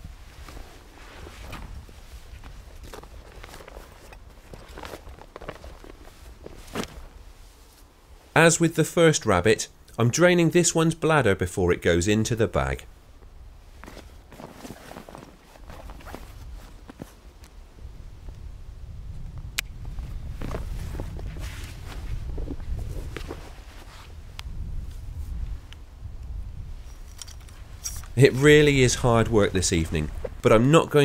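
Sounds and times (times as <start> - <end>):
shuffling steps: 0.0 - 7.9, 13.7 - 17.4, 27.6 - 30.6
clothing rustling: 0.0 - 8.1, 13.6 - 17.5, 20.0 - 24.2.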